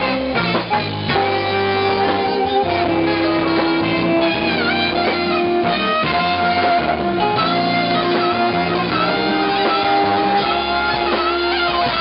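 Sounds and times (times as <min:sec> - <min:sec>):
drums: 0:00.0 - 0:12.0
electric guitar: 0:00.0 - 0:12.0
saxophone: 0:00.0 - 0:12.0
violin gliding notes: 0:01.7 - 0:09.5.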